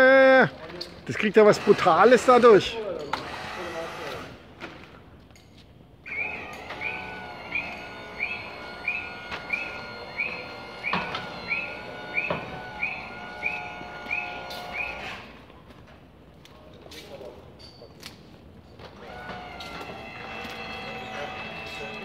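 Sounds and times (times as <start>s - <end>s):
motor hum: 6.1s - 15.0s
motion alarm beeping: 6.1s - 15.2s.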